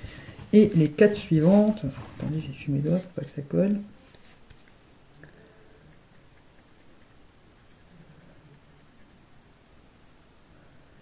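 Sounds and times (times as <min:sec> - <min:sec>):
fingertip rubbing powder eyeshadow: 0:05.8 - 0:10.6.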